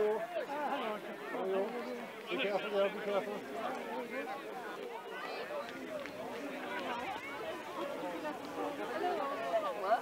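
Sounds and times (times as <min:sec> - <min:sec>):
indistinct chatter of people: 0:00.0 - 0:10.0.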